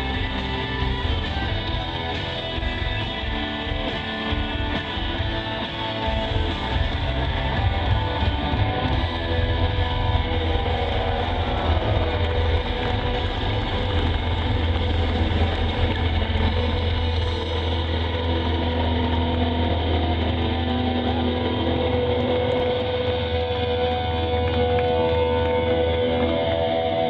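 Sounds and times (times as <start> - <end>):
droning guitar notes: 0.0 - 27.0
live rock band playing: 0.0 - 27.0.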